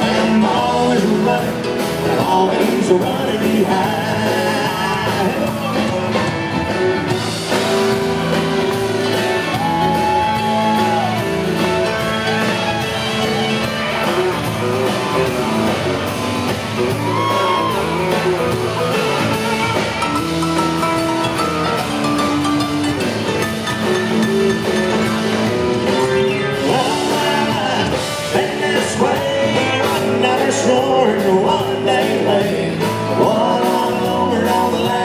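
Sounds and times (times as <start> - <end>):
live country band playing: 0.0 - 35.0
bent guitar lead notes: 4.7 - 30.4.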